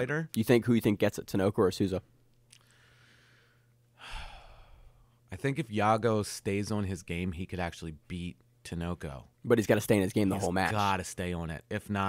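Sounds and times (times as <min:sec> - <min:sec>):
man sighing: 0:04.0 - 0:05.1.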